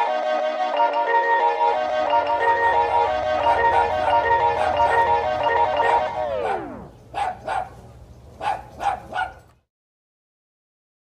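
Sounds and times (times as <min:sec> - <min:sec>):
dog barking: 0:03.4 - 0:05.2, 0:05.8 - 0:07.8, 0:08.4 - 0:09.6.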